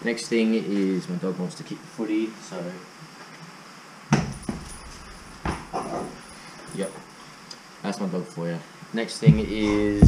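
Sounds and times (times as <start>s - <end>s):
dog barking: 5.7s - 6.2s.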